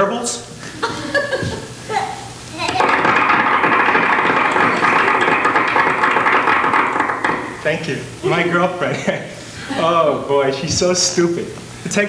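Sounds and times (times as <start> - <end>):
audience applauding: 3.9 - 7.0.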